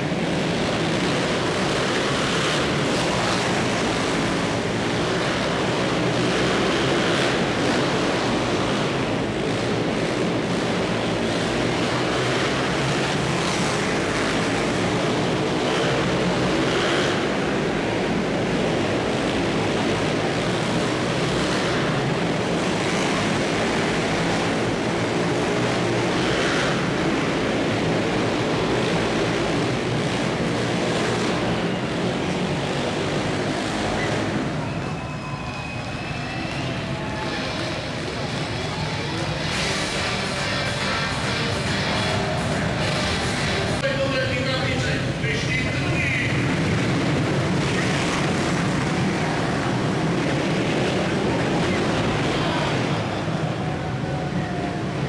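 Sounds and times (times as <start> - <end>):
crowd noise: 0.0 - 55.0
motorcycle engines racing: 0.0 - 55.0.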